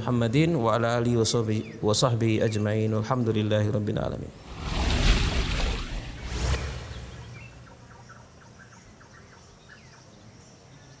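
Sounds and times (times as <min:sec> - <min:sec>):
sharp swish: 0:04.4 - 0:07.8
whoosh with sweeping tones: 0:04.4 - 0:08.2.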